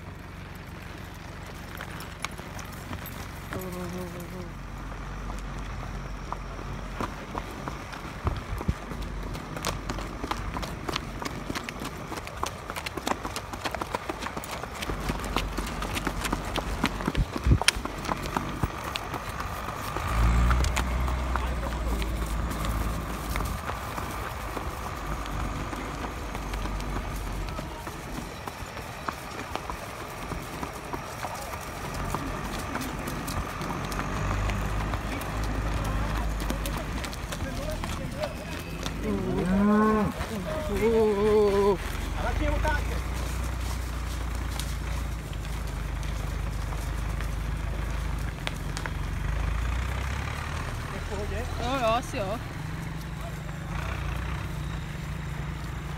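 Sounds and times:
horse hoofbeats on dirt: 0:00.0 - 0:55.9.

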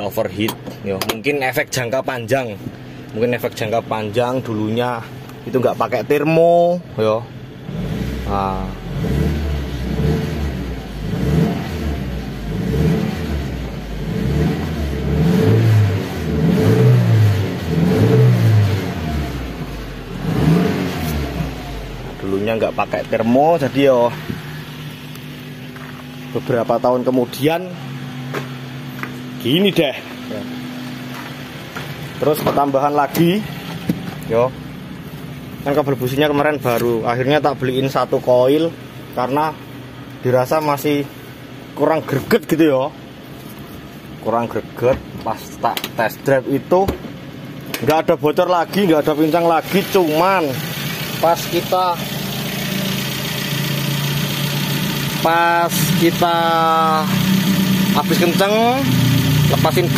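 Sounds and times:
car engine idling: 0:00.0 - 0:59.9.

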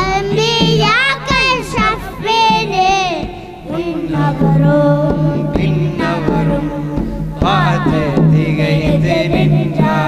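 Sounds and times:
child singing devotional song: 0:00.0 - 0:10.0.

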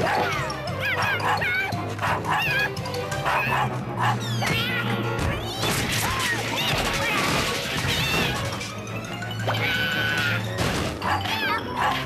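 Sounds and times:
cartoon dog yipping and barking: 0:00.0 - 0:08.4, 0:11.0 - 0:12.0
background music: 0:00.0 - 0:12.0.

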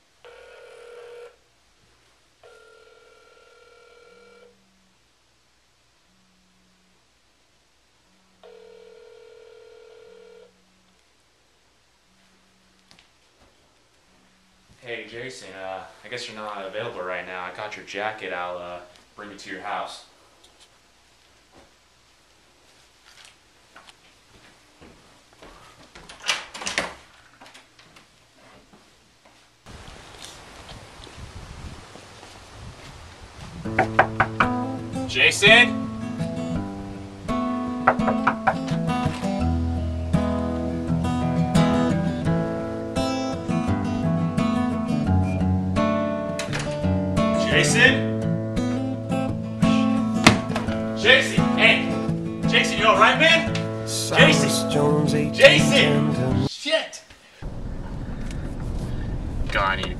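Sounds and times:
telephone ringback tone: 0:00.2 - 0:01.4, 0:02.4 - 0:04.6, 0:08.4 - 0:10.6.

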